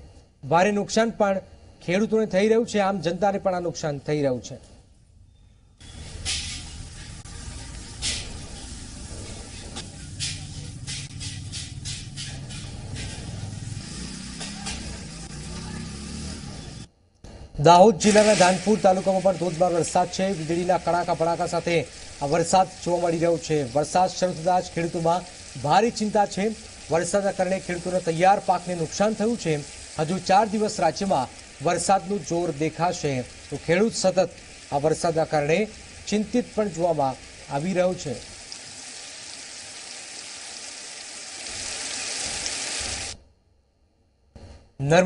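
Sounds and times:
newsreader speaking: 0:17.6 - 0:38.3
rain falling: 0:18.0 - 0:43.2.

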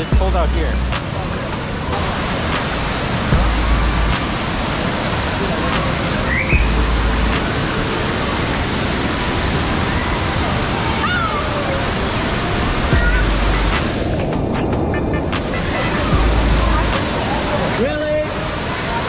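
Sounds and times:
low rumbles: 0:00.0 - 0:08.4, 0:12.9 - 0:17.6
river and waterfall rushing: 0:00.0 - 0:19.0.

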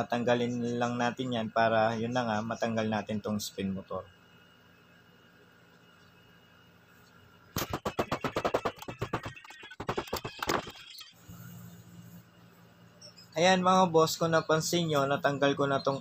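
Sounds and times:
faint low hum: 0:00.0 - 0:07.6.

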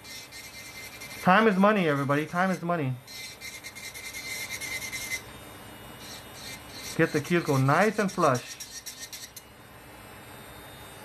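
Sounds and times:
drill grinding acrylic: 0:00.0 - 0:09.4
nail drill whining: 0:06.0 - 0:09.4.

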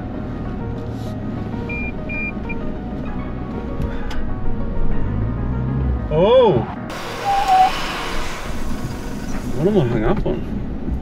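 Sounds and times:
diesel engine working: 0:06.8 - 0:11.0
hiss of spinning sand: 0:06.9 - 0:09.8.

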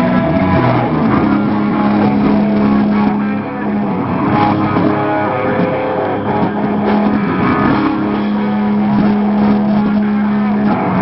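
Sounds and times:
punk rock band playing: 0:00.0 - 0:11.0.

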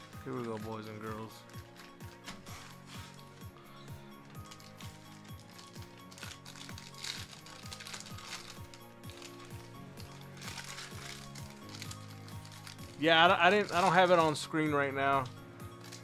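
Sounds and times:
background music with beat: 0:00.0 - 0:16.0
foil wrappers tearing and crinkling: 0:00.2 - 0:03.4, 0:04.3 - 0:14.4, 0:15.7 - 0:16.0.

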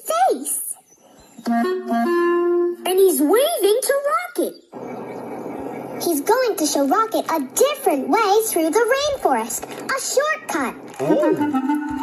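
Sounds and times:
person speaking: 0:10.8 - 0:11.6
woodwind phrase: 0:11.0 - 0:12.0.

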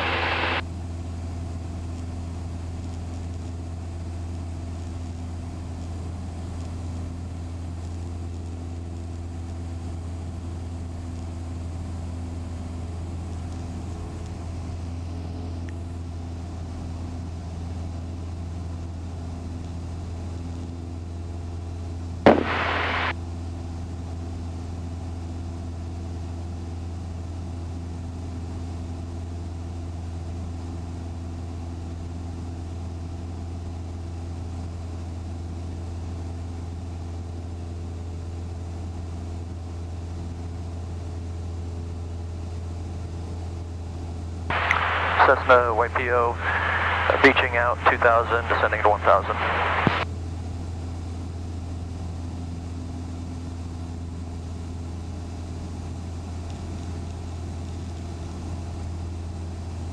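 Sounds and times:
propeller plane engine droning: 0:00.0 - 0:59.9
short loud burst of noise: 0:22.3 - 0:23.1.

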